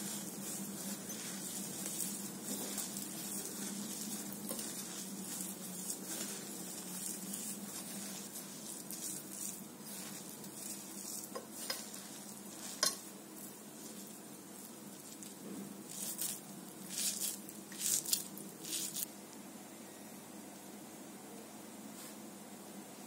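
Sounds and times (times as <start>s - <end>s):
hands mixing food rustling: 0.0s - 19.1s.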